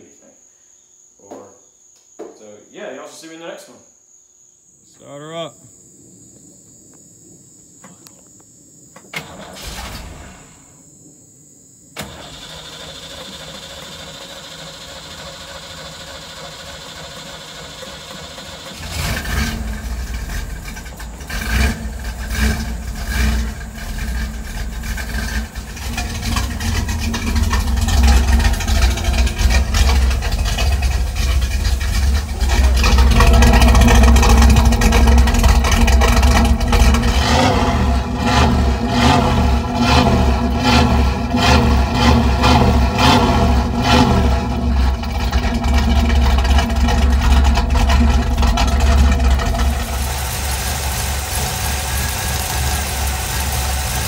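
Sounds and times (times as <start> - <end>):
car engine starting and revving: 9.2 - 10.7, 12.0 - 54.0.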